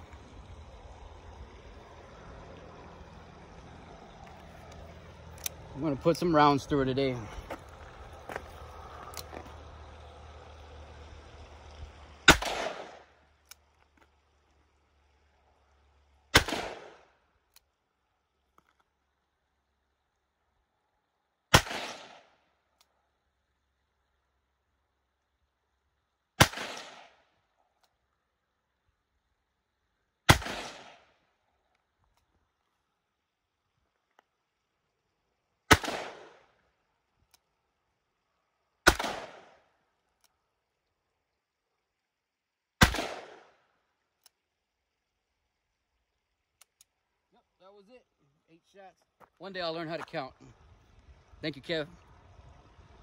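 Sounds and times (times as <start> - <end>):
revolver shots with echo: 12.3 - 13.0, 30.3 - 31.0, 35.7 - 36.4, 38.9 - 39.5.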